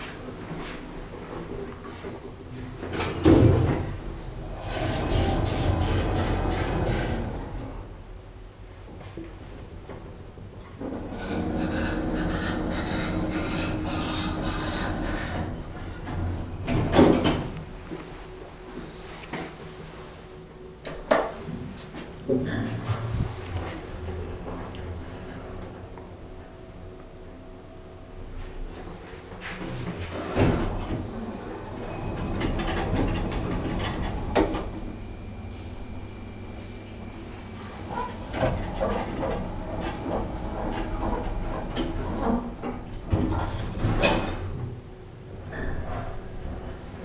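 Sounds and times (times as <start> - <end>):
elevator doors sliding shut: 3.0 - 8.0, 10.8 - 17.6, 30.0 - 44.7
steady hum: 3.2 - 45.5
lift humming: 3.7 - 8.7, 30.2 - 43.1.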